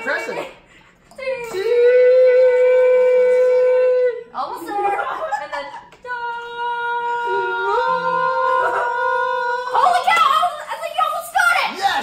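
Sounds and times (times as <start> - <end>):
voices and laughter: 0.0 - 12.0.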